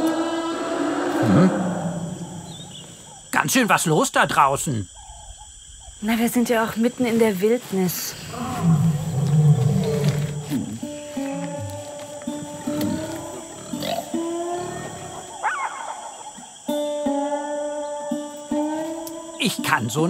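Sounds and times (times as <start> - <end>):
lion roaring: 0.0 - 3.0, 8.3 - 16.1
plucked-string music: 10.0 - 14.4, 16.7 - 20.0.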